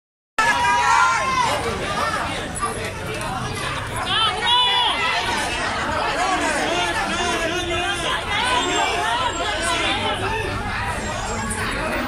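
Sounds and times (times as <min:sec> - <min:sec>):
crowd talking: 0:00.4 - 0:12.0.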